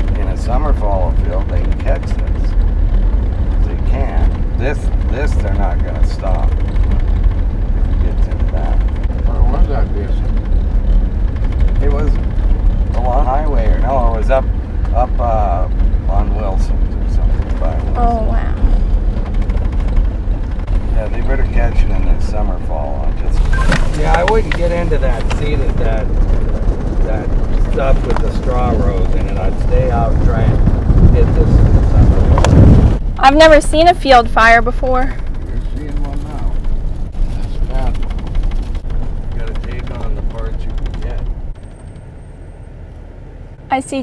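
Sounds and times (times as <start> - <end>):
wind buffeting microphone: 0.0 - 42.2
truck rumble inside cab: 0.0 - 44.0.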